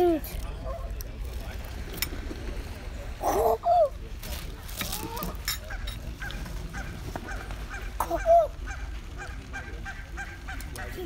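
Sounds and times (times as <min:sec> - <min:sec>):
geese honking: 0:05.7 - 0:11.0.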